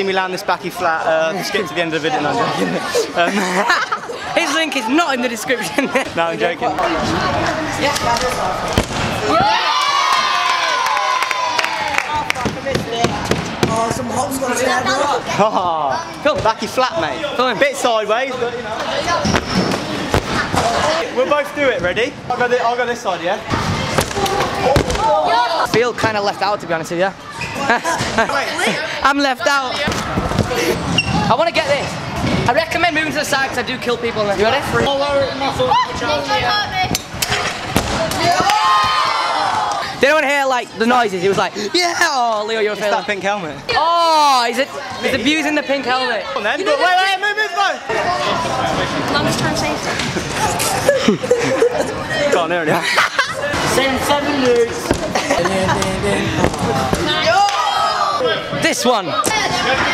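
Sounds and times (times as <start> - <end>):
crowd voices: 0.0 - 59.9.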